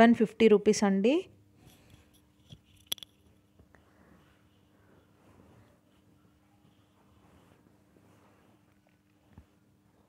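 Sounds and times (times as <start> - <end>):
rustling of fabric: 3.9 - 10.0.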